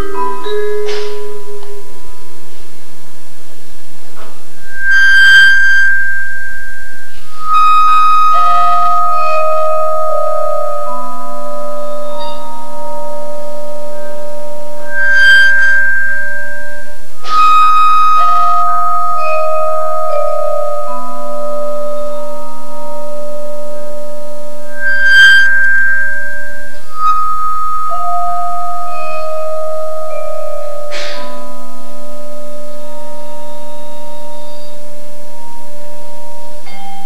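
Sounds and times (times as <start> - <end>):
vibraphone notes ringing: 0.0 - 2.6, 4.6 - 37.0.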